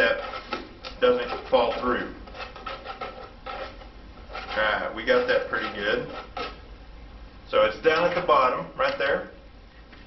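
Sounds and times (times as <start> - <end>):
tool scraping inside plastic bottle: 0.0 - 6.6.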